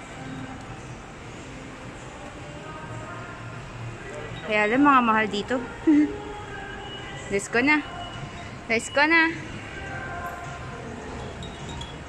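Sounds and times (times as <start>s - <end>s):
background hum of hall: 0.0s - 12.0s.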